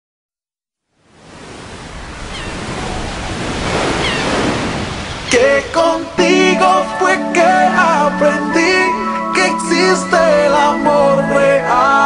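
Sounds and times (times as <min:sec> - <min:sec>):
ocean surf: 0:01.0 - 0:12.0.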